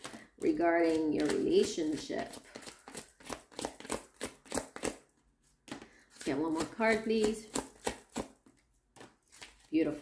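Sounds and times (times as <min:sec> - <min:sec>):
cards shuffling clicks: 0:00.0 - 0:05.0, 0:05.7 - 0:09.7.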